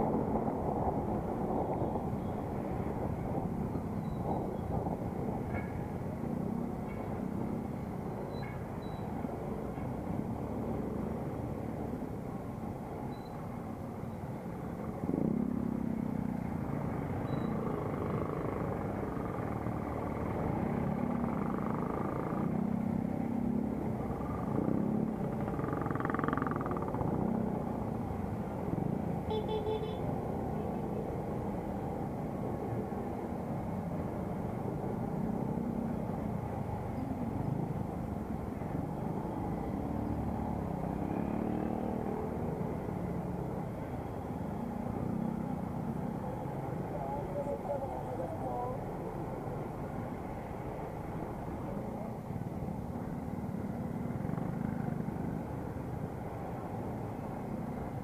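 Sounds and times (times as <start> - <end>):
traffic noise: 0.0 - 58.0.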